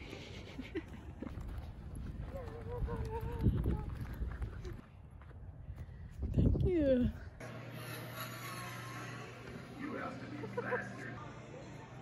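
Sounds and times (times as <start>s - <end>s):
footsteps: 0.5s - 6.3s.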